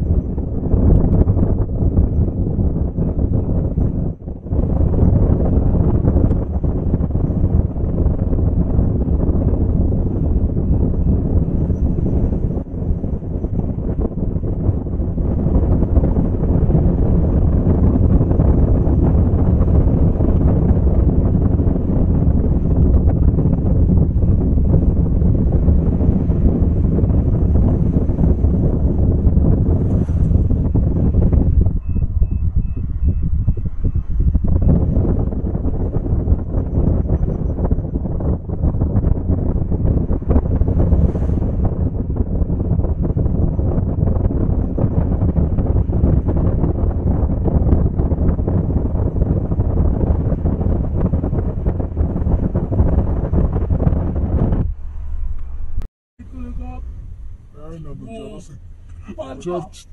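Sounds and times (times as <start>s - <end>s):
car road noise: 0.0s - 59.9s
wind buffeting microphone: 0.0s - 59.9s.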